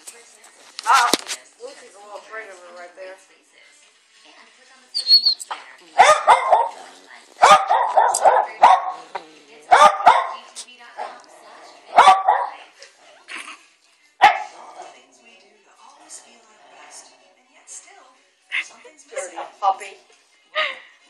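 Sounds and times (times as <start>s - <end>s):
dog barking: 6.0s - 9.1s, 9.7s - 11.2s, 11.9s - 12.6s, 14.2s - 14.8s.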